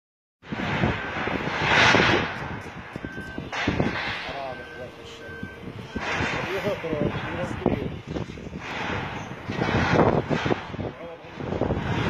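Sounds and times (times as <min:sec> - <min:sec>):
rushing noise: 0:00.4 - 0:12.0
short high beeps: 0:02.9 - 0:03.6, 0:04.2 - 0:06.8.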